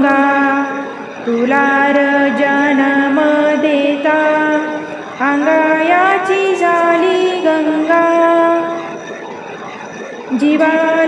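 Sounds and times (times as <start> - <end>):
woman singing folk song: 1.3 - 8.8.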